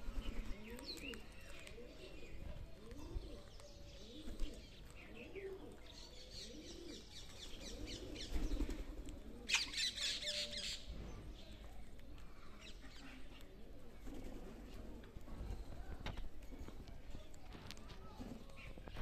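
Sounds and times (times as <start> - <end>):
bird cooing: 0.0 - 10.9.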